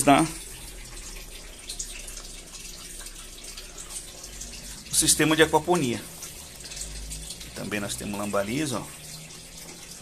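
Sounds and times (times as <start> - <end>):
faint water drips: 0.0 - 10.0
water trickling into tank: 0.0 - 10.0.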